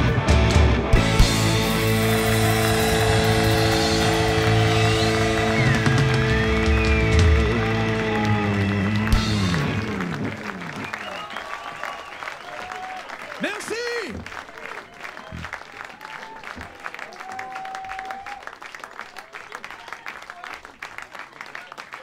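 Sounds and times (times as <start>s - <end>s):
people shouting and cheering: 0.0s - 22.0s
audience applauding: 1.2s - 22.0s.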